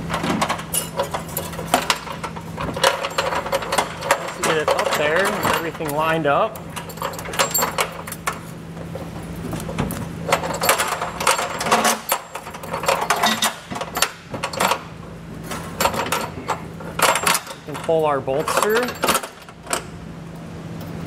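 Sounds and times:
steady low hum: 0.0s - 21.0s
metal wires clinking and rattling: 0.1s - 8.6s, 9.5s - 20.0s.

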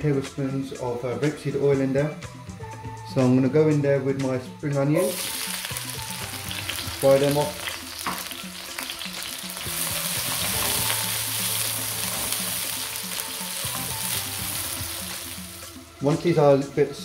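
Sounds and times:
onions sizzling in a wok: 5.0s - 15.9s.

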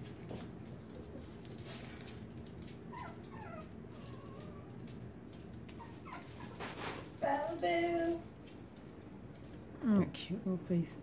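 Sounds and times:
puppy whimpering: 2.9s - 4.8s, 5.7s - 6.6s.

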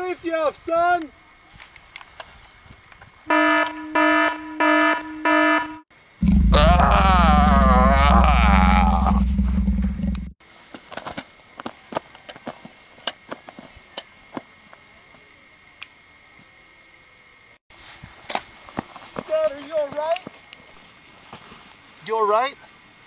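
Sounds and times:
warbling ray-gun blast: 6.2s - 7.6s
buzzing drone: 6.2s - 10.3s.

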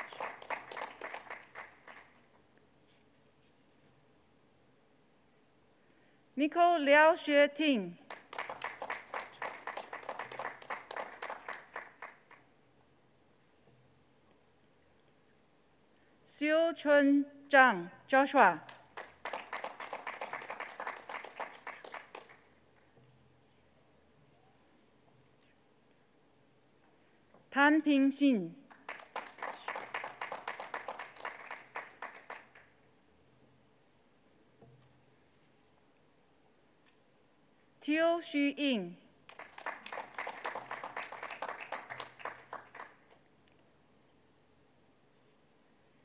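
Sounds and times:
audience applauding: 0.0s - 2.2s, 8.1s - 12.4s, 18.8s - 22.4s, 28.7s - 32.7s, 39.3s - 43.1s
people clapping: 0.0s - 2.4s, 8.1s - 12.5s, 18.7s - 22.5s, 28.7s - 32.8s, 39.2s - 43.2s.

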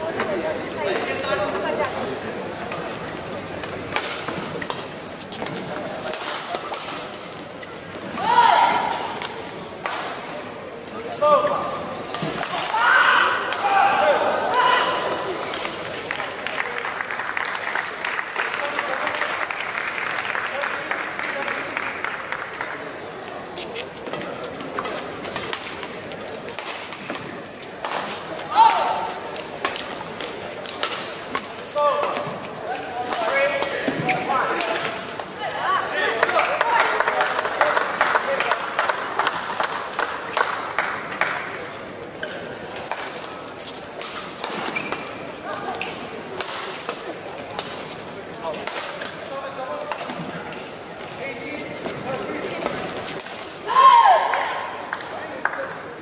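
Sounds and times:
voices in hall: 0.0s - 56.0s.

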